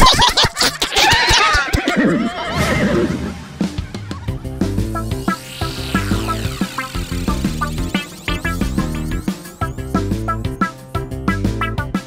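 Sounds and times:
horse whinny: 1.9s - 3.4s
background music: 2.6s - 12.0s.

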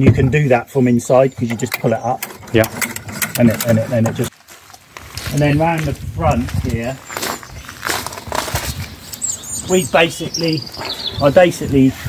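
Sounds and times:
crunchy footsteps: 3.4s - 9.5s.

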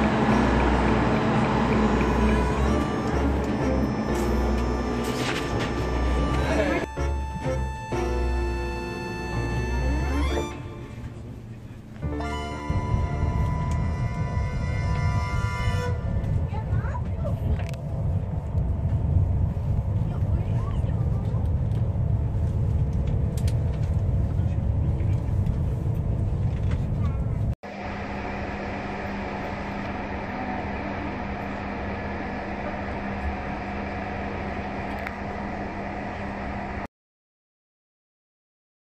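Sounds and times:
train rumble inside carriage: 0.0s - 36.8s
music: 1.7s - 11.3s, 12.0s - 16.6s.

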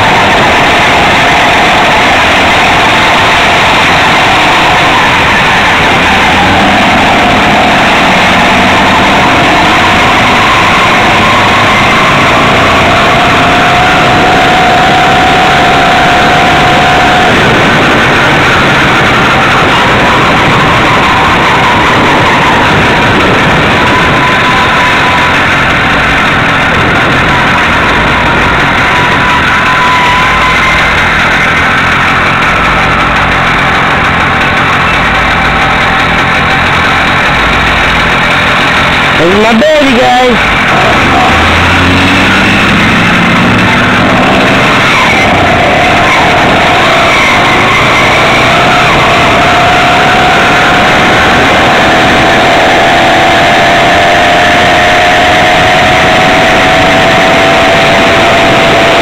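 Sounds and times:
small two-stroke engine running: 4.8s - 59.0s.

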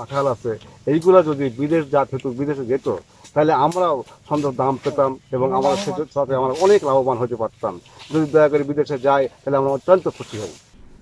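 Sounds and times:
man talking: 0.0s - 10.6s.

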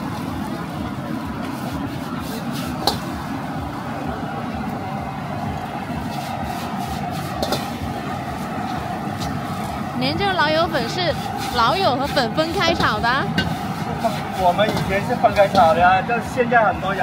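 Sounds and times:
gas burner roaring: 0.0s - 17.0s
noodles sizzling in a wok: 0.0s - 17.0s
spatula scraping a wok: 1.4s - 3.4s, 6.0s - 15.8s
man talking: 13.9s - 17.0s.

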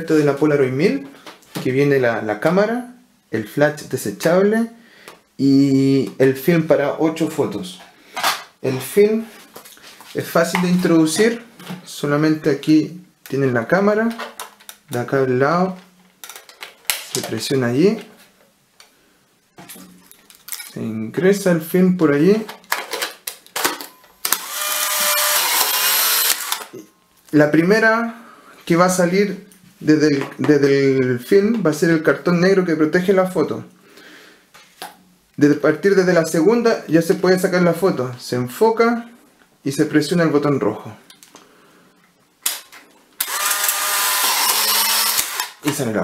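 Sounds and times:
camera motor whirring: 24.2s - 26.7s, 43.2s - 45.6s
camera shutter click: 42.4s - 45.7s.

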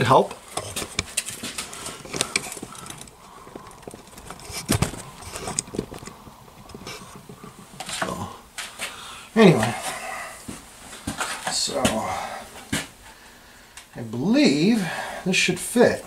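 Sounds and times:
plastic blister pack rustling: 0.4s - 8.8s.

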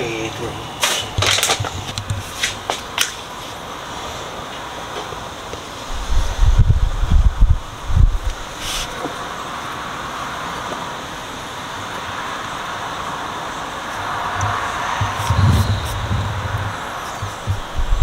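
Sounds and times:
low hum: 14.0s - 18.0s
dull low thumps: 14.4s - 18.0s.

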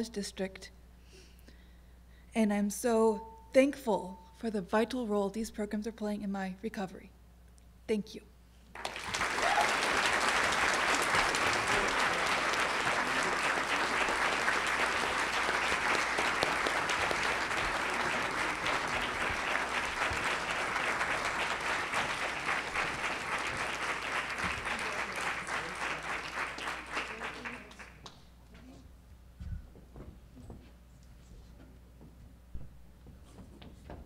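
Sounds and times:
audience applauding: 8.7s - 28.1s.

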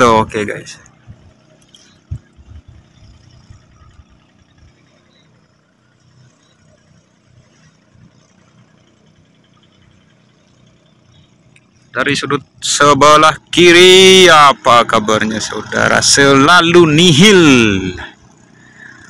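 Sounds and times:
low rumbling: 0.0s - 19.0s.

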